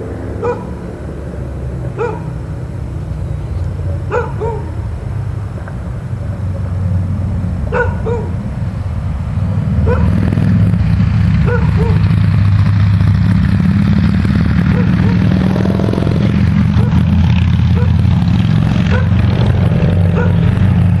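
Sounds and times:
dog barking: 0.4s - 0.8s, 2.0s - 2.3s, 4.1s - 4.8s, 7.7s - 8.4s, 9.8s - 10.2s, 11.4s - 12.0s, 14.7s - 15.2s, 16.8s - 17.1s, 17.7s - 18.0s, 18.9s - 19.2s, 20.1s - 20.5s.

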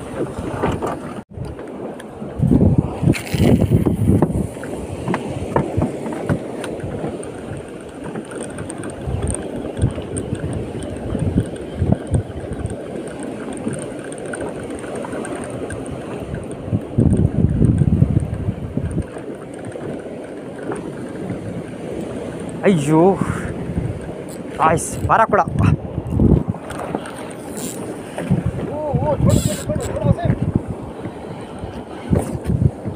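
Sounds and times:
choppy sea water: 0.0s - 32.9s
wind buffeting microphone: 0.0s - 32.9s.

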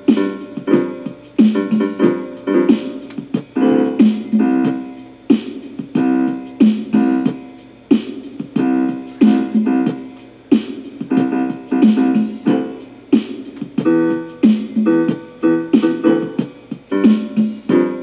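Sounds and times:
keyboard and guitar music: 0.0s - 18.0s.

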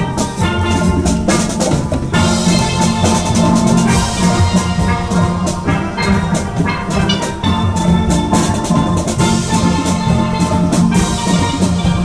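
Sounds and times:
steady drum beat: 0.0s - 12.0s
steel pans playing: 0.0s - 12.0s.

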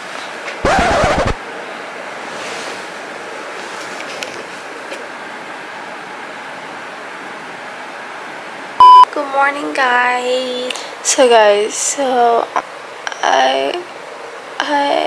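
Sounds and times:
loud electronic beep: 8.8s - 9.1s.

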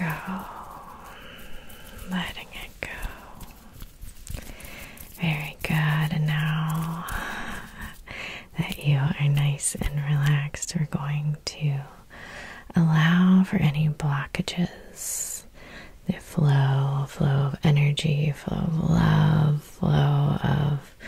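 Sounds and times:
woman whispering: 0.0s - 12.1s, 12.7s - 21.0s.

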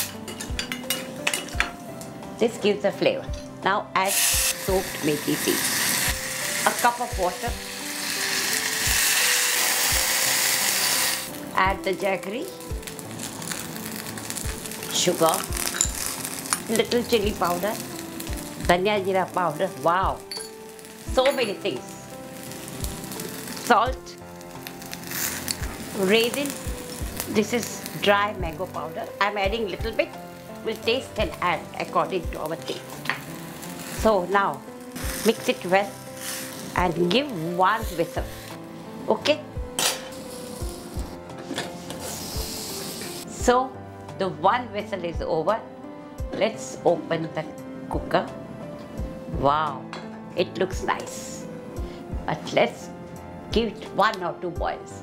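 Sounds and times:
faint background music: 0.0s - 55.0s
steam hissing from pressure cooker: 41.9s - 43.2s.

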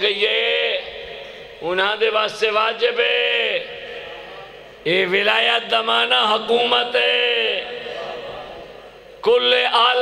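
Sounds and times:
man preaching in sing-song voice: 0.0s - 10.0s.

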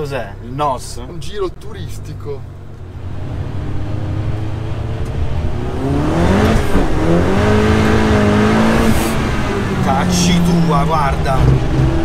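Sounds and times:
car engine accelerating hard: 0.4s - 12.0s.

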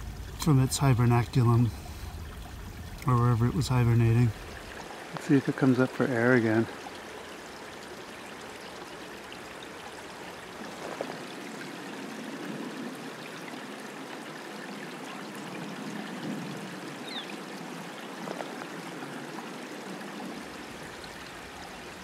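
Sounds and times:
creek water trickling: 0.0s - 22.0s.

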